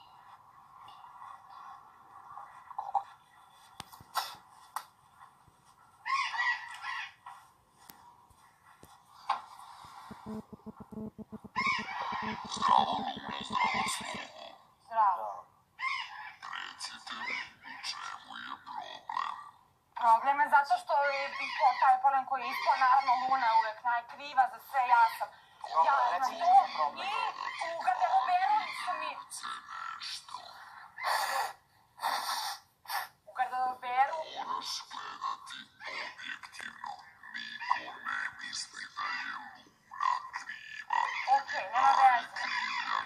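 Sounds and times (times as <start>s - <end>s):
electronically disguised voice speaking: 10.1s - 14.4s.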